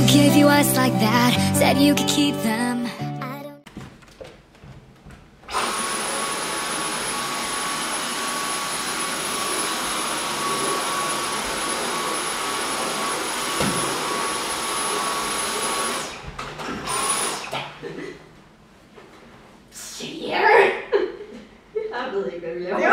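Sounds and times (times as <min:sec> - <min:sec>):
vacuum cleaner whining: 0:05.5 - 0:17.6.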